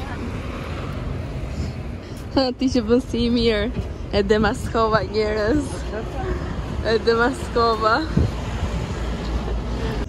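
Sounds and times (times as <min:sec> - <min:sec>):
road traffic rushing: 0:00.0 - 0:10.0
wind buffeting microphone: 0:00.0 - 0:10.0.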